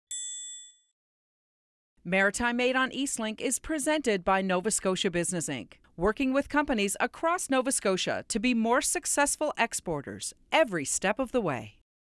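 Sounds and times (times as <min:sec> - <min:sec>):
high-pitched bell ding: 0:00.1 - 0:00.9.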